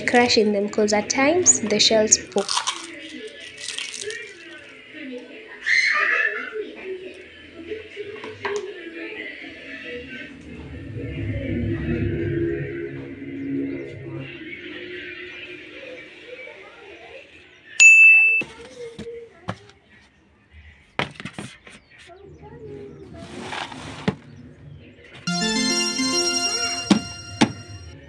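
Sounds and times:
loud ringing ding: 0:17.8 - 0:18.5
sung background music: 0:25.3 - 0:28.0.

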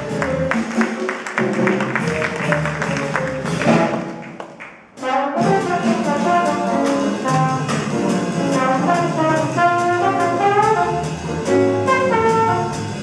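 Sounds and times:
drums: 0:00.0 - 0:13.0
jazz band playing: 0:00.0 - 0:13.0
piano: 0:00.0 - 0:13.0
trombone: 0:01.4 - 0:04.2, 0:05.0 - 0:13.0
alto saxophone: 0:08.5 - 0:13.0.

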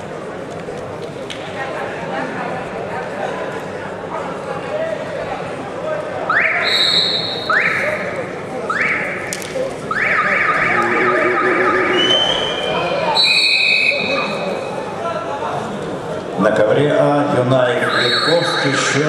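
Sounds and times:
short high whistle: 0:11.9 - 0:14.2, 0:17.8 - 0:18.6.

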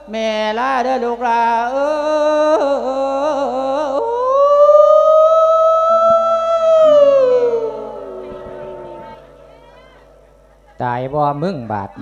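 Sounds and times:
amplified chanting voice: 0:00.0 - 0:12.0
low steady tones: 0:04.1 - 0:12.0.

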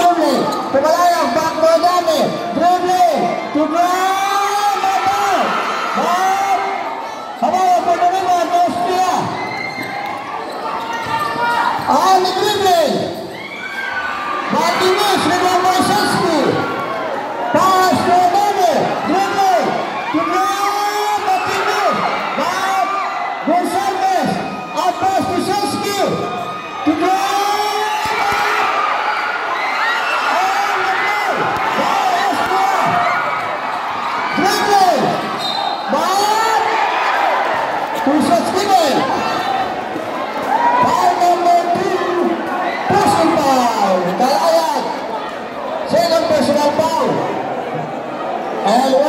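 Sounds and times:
crowd noise: 0:00.0 - 0:49.0.

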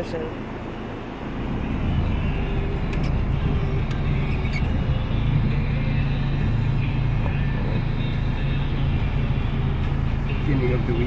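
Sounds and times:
car cabin road rush: 0:00.0 - 0:11.0
car engine humming: 0:00.0 - 0:11.0.

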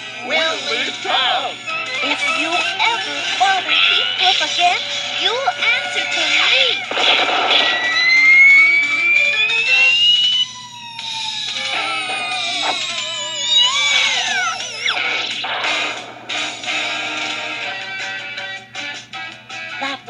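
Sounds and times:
steady low hum: 0:00.0 - 0:19.5
rising whistle: 0:07.6 - 0:15.0
wavering falling whistle tones: 0:07.6 - 0:15.0.

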